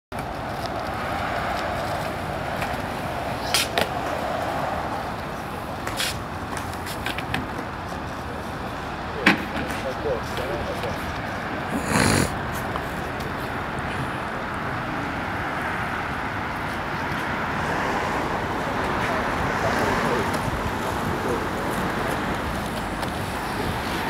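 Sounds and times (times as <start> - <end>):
skateboard wheels rolling on concrete: 0.1 - 24.0
skateboard clacking on ground: 0.2 - 4.5, 5.2 - 7.8.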